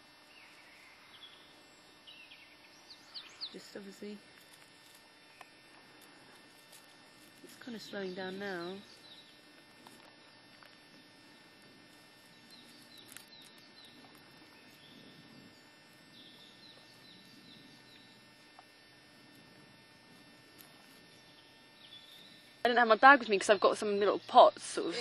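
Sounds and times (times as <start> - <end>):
distant birds chirping: 0.2 - 4.2, 5.1 - 19.1, 19.7 - 25.0.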